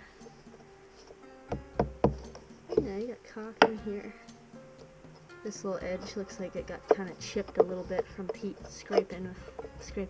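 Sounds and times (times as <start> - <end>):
mallet knocking on metal tool: 1.5 - 3.0, 6.6 - 9.9.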